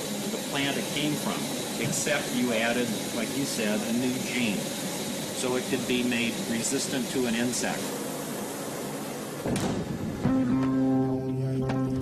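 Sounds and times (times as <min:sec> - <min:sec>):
room noise hiss: 0:00.0 - 0:11.4.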